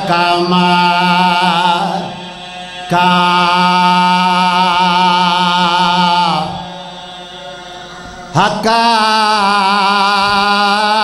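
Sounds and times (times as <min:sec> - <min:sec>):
man chanting a held note: 0:00.0 - 0:11.0.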